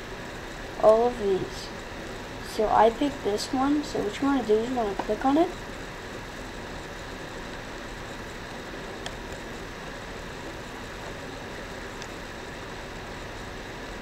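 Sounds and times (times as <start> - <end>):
microphone hum and hiss: 0.0 - 14.0.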